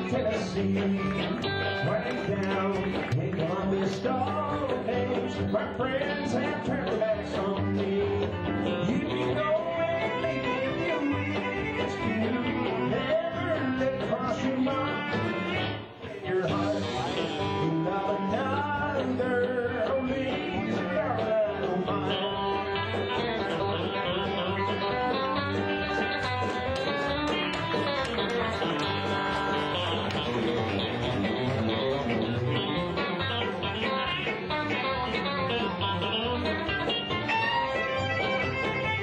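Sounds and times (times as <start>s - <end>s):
bluegrass band playing: 0.0s - 39.0s
electric guitar picking melody: 0.0s - 39.0s.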